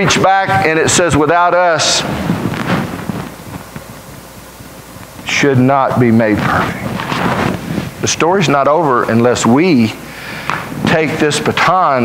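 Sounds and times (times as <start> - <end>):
steady room tone hiss: 0.0 - 12.0.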